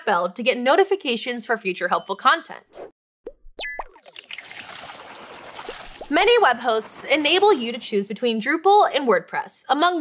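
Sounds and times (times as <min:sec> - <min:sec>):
bubbly plops with pitch glides: 0:03.2 - 0:06.4.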